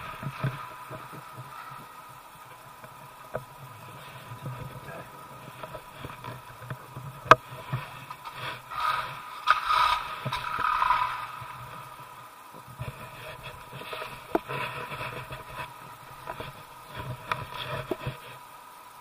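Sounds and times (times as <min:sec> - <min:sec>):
scraping on icy snow: 0:00.0 - 0:18.5
faint steady hum: 0:00.0 - 0:19.0.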